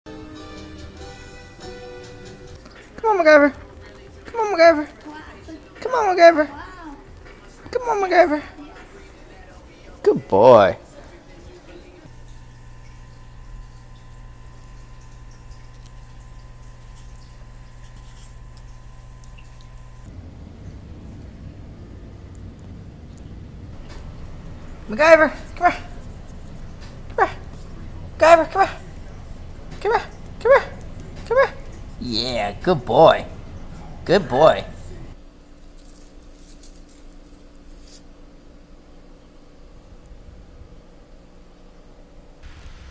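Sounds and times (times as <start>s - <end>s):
low electrical hum: 2.3s - 42.9s
small wet licking clicks: 14.0s - 20.1s
rustling and scratching on leaves: 14.4s - 20.1s, 23.2s - 27.9s, 35.4s - 38.3s.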